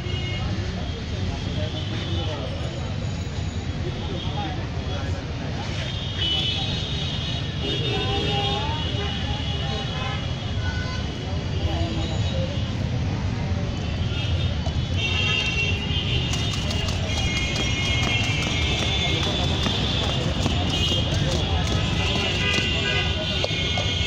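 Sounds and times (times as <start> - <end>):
low traffic rumble: 0.0 - 24.0
voices of passers-by: 0.0 - 24.0.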